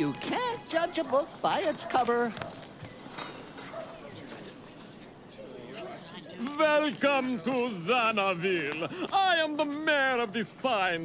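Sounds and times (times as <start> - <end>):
murmuring voices: 0.0 - 11.0.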